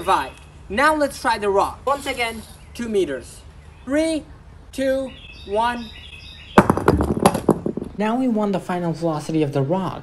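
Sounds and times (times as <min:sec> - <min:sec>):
rattling knocks of scattering bits: 0:06.6 - 0:08.0
rock cracking on concrete floor: 0:06.6 - 0:08.0.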